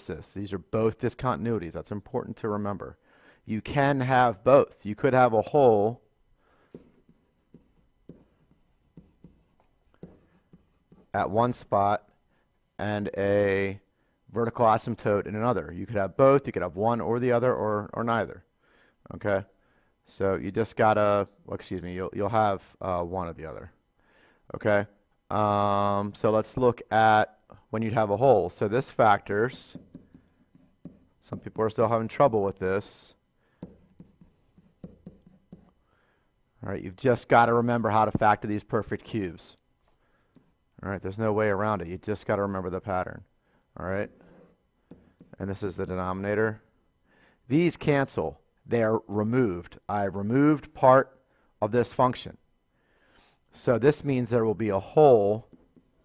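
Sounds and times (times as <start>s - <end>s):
stylus tapping and scratching: 6.6s - 11.3s, 29.0s - 31.8s, 33.6s - 35.8s.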